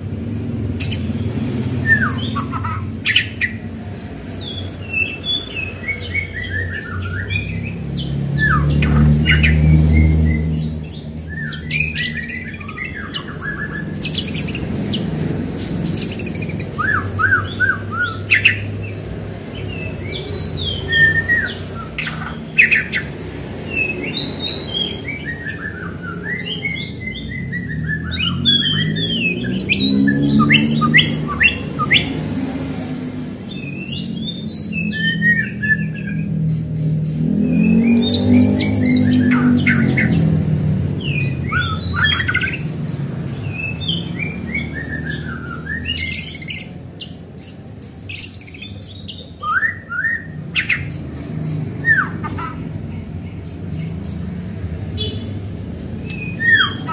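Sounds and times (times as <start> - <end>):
bird singing whistled phrases: 1.8 - 3.6, 23.7 - 32.1, 47.9 - 50.9, 56.0 - 56.9.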